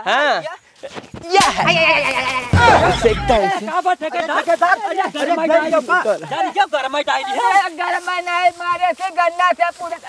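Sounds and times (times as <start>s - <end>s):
quavering vocal cry: 1.3s - 3.4s.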